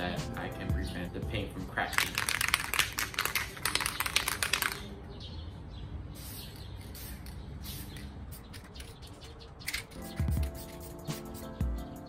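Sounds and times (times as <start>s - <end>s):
crackling and clicking handling: 1.9s - 4.9s.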